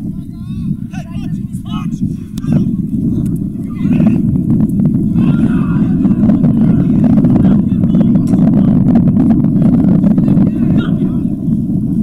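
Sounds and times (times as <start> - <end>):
wind rumble on microphone: 0.0 - 12.0
players shouting: 0.3 - 8.7.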